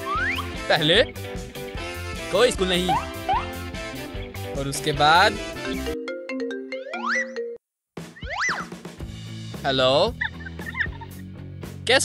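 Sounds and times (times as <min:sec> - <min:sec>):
whistle-like pitch glide: 0:00.0 - 0:00.5, 0:02.9 - 0:03.6
light background music: 0:00.0 - 0:07.2, 0:08.2 - 0:12.0.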